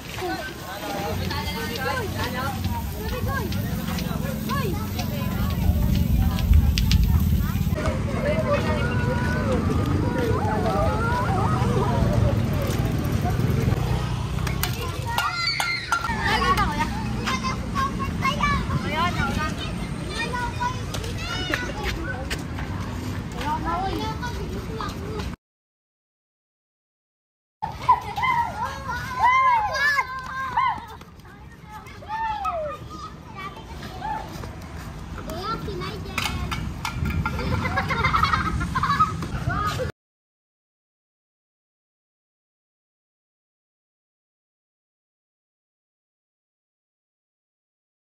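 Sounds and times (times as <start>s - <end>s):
low outdoor rumble: 0.0s - 15.0s
low rumble of traffic: 0.0s - 25.4s, 27.6s - 39.9s
people talking: 0.0s - 25.4s, 27.8s - 34.6s, 35.2s - 36.6s
children calling out: 7.4s - 12.3s, 14.7s - 18.8s, 27.6s - 34.5s.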